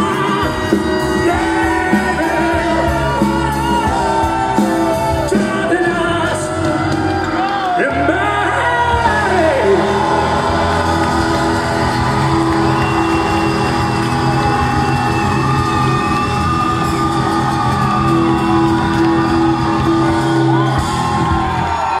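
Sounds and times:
person singing: 0:00.0 - 0:10.8
audience whooping: 0:00.0 - 0:22.0
live band with trumpet and guitar: 0:00.0 - 0:22.0.

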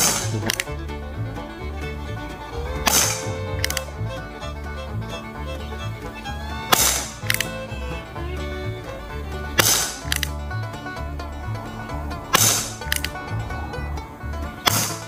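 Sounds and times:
revolver shot crack: 0:06.6 - 0:07.6, 0:09.5 - 0:10.3, 0:12.3 - 0:13.4
short click: 0:07.2 - 0:07.5.

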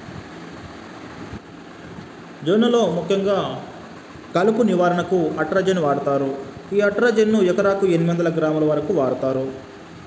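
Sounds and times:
low background hum and hiss: 0:00.0 - 0:10.0.

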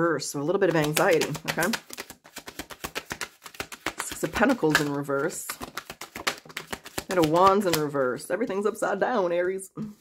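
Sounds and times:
cards being shuffled: 0:00.6 - 0:08.1.

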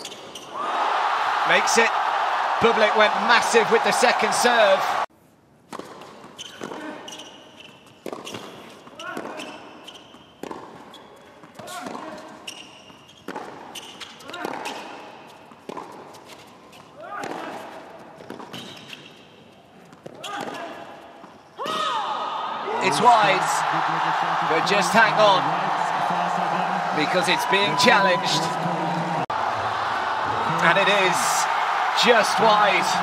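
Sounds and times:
tennis ball bouncing: 0:08.0 - 0:09.5
crowd voices: 0:22.5 - 0:33.0.

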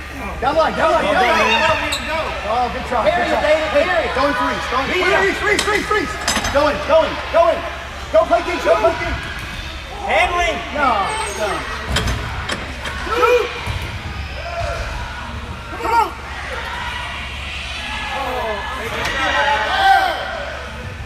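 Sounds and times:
voices calling out: 0:00.0 - 0:21.0.

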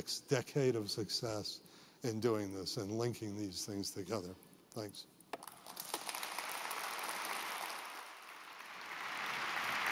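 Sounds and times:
audience applauding: 0:05.4 - 0:09.9.

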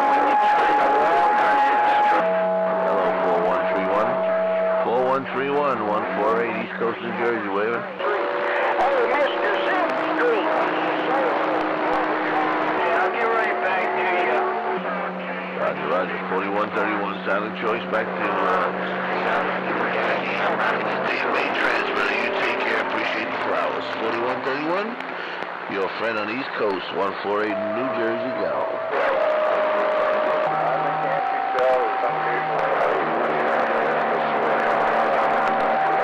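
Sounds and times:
garbled radio voices: 0:00.0 - 0:36.0
radio band noise hiss: 0:00.0 - 0:36.0.

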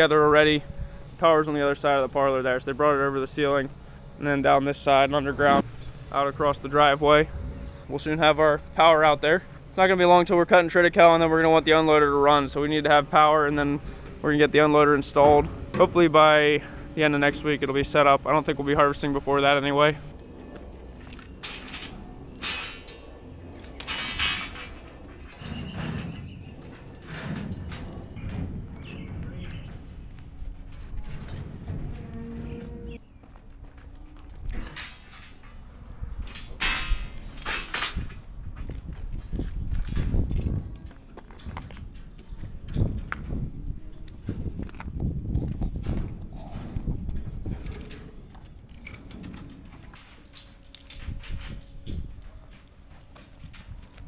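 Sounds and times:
steel rebar clanking and scraping: 0:00.0 - 0:33.0, 0:33.8 - 0:45.1
wind rumbling on microphone: 0:00.0 - 0:54.0.

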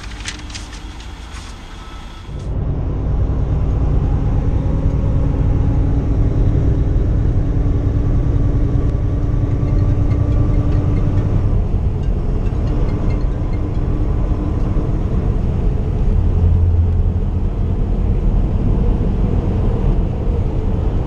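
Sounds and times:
truck diesel engine drone: 0:00.0 - 0:21.0
deep hum: 0:02.4 - 0:21.0.

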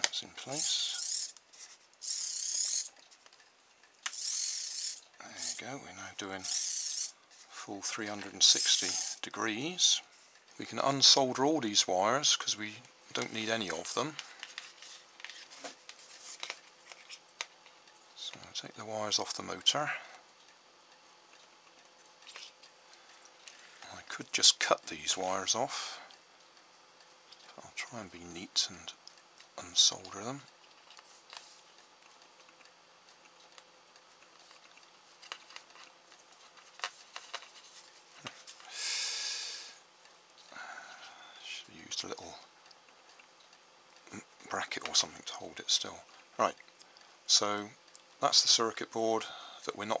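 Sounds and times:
quiet handling noise: 0:00.0 - 0:04.2, 0:07.2 - 0:38.7
faint plastic clicks and rustles: 0:00.0 - 0:05.6, 0:12.8 - 0:18.4, 0:21.3 - 0:24.3, 0:29.0 - 0:38.8.

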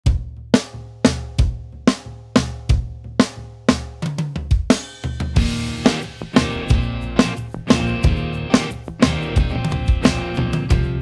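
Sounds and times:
indie rock drum beat: 0:00.0 - 0:11.0
held pitched notes: 0:05.4 - 0:11.0.

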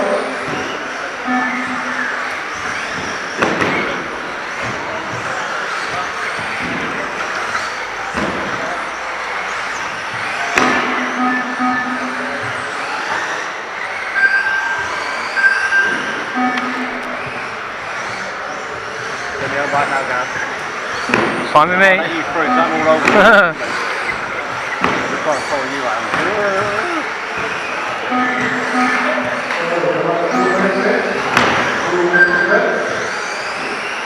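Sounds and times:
electric motors whining: 0:00.0 - 0:34.0.

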